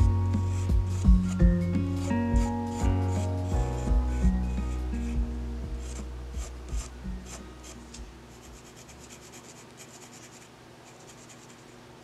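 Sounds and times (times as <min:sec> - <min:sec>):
low background music: 0:00.0 - 0:09.4
pencil scratching on paper: 0:00.3 - 0:03.6, 0:05.8 - 0:07.8, 0:08.4 - 0:11.8.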